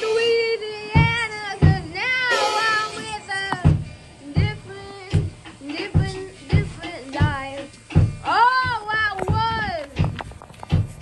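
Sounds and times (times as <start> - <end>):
boy singing without words: 0.0 - 10.0
dull thumps: 1.0 - 11.0.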